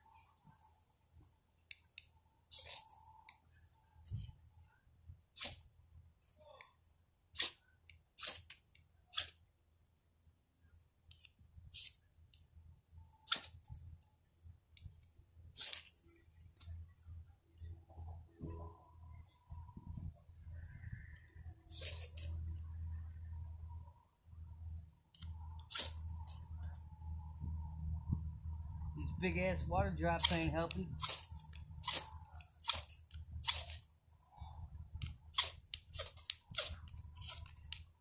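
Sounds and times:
knife scraping firesteel rod: 2.5s - 3.0s, 5.4s - 5.7s, 7.4s - 7.6s, 8.2s - 9.4s, 11.8s - 12.0s, 15.6s - 16.0s, 21.7s - 22.4s, 25.6s - 26.5s, 30.2s - 33.9s, 35.0s - 37.9s
low rumbling noise: 18.0s - 32.4s.

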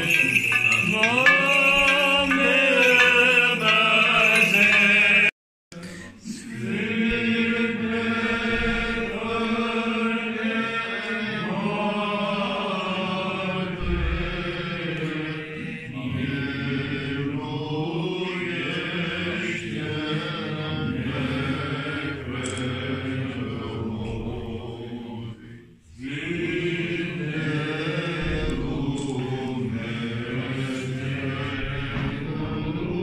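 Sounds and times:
voices chanting: 0.0s - 33.0s.

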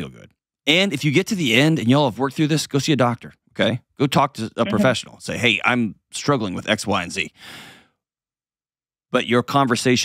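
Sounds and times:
man speaking: 0.0s - 7.4s, 9.2s - 10.0s.

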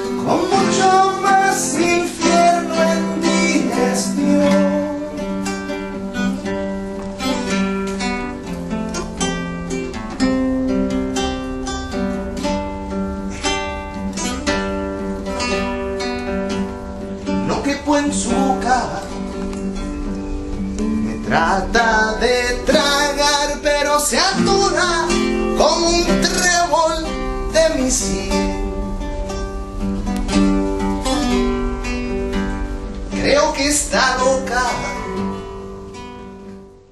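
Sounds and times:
classical guitar strumming chords: 0.0s - 36.9s.

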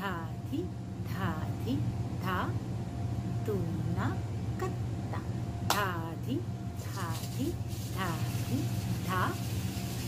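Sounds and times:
steady low hum: 0.0s - 10.0s
woman speaking short syllables: 3.4s - 9.4s.

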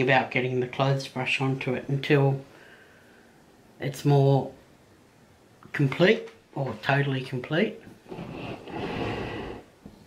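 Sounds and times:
long breath out: 2.5s - 3.4s.

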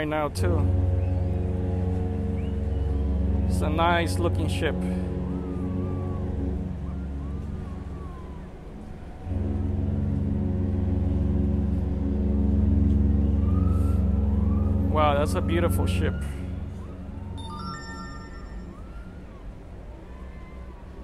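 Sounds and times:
whistle-like tones: 2.2s - 3.3s, 13.5s - 20.8s
steady droning hum: 4.9s - 15.5s.

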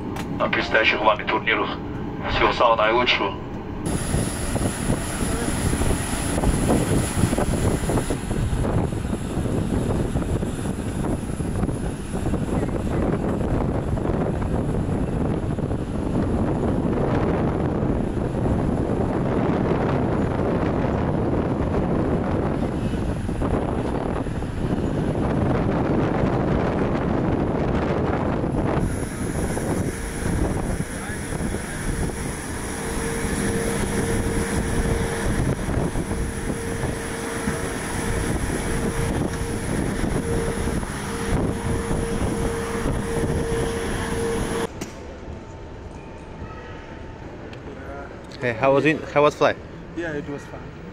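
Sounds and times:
jet engine rumble with whine: 0.0s - 50.9s
terminal hall hum: 0.0s - 50.9s
wind on microphone: 3.7s - 44.8s
steady mid-pitched tone: 28.8s - 44.8s.

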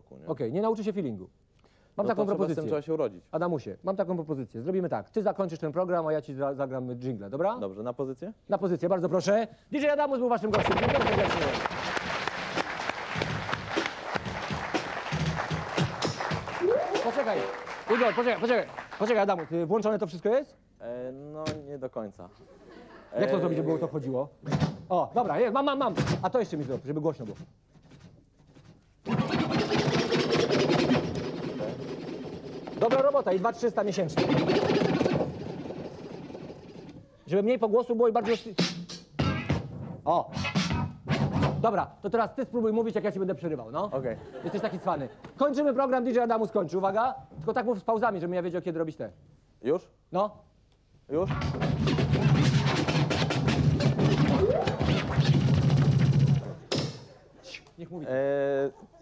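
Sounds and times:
turntable scratching: 10.5s - 18.4s, 27.8s - 37.0s, 38.2s - 41.6s, 51.2s - 57.7s.

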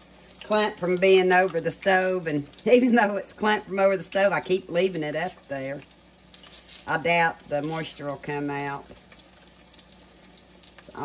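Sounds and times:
meat sizzling in a pan: 0.0s - 11.0s.

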